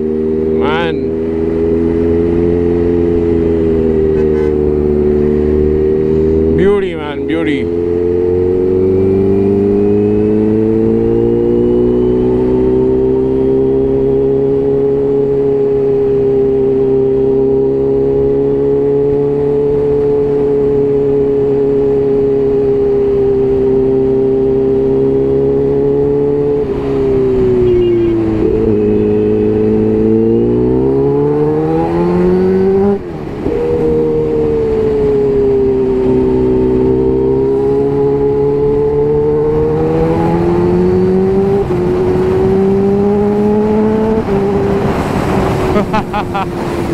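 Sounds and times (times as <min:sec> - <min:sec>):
motorcycle engine revving: 0:00.0 - 0:46.9.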